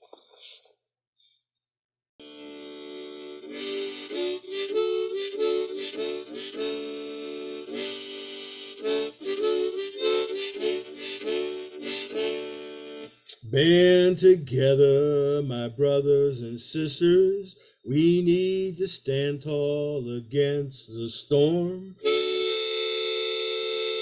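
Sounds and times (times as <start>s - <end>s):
harmonica playing chords: 2.2s - 14.0s, 22.0s - 24.0s.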